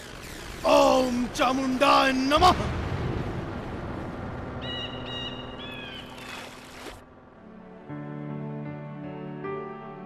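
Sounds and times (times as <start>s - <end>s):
high bird chirps: 4.6s - 6.4s.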